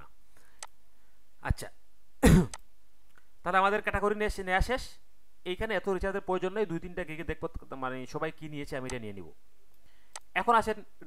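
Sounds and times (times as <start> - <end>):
man clearing his throat: 2.2 - 2.6.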